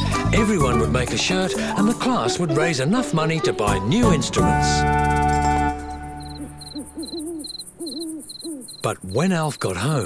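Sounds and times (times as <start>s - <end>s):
music: 0.0s - 7.0s
crickets chirping: 5.0s - 10.0s
owl hooting: 5.0s - 10.0s.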